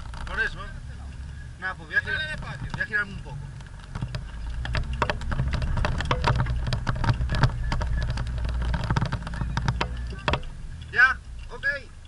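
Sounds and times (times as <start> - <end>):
vehicle engine rumbling under load: 0.0 - 12.0
vehicle knocks and rattles: 0.0 - 12.0.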